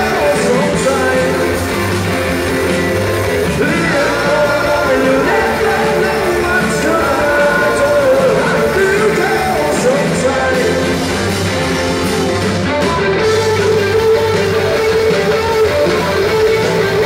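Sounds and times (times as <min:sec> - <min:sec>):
lead voice singing: 0:00.0 - 0:17.0
live rock band playing: 0:00.0 - 0:17.0.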